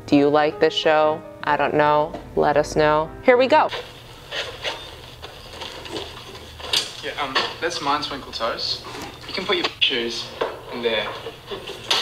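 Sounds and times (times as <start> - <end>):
low steady hum: 0.0 - 9.4
rustling: 3.7 - 9.7.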